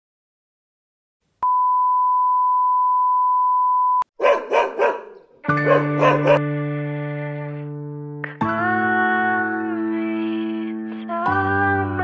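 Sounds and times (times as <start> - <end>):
dog barking: 4.2 - 6.4.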